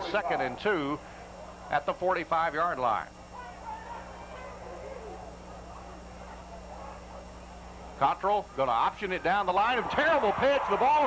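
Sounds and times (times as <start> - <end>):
stadium crowd murmur: 0.0 - 2.0, 3.2 - 11.0
low electrical hum: 0.0 - 11.0.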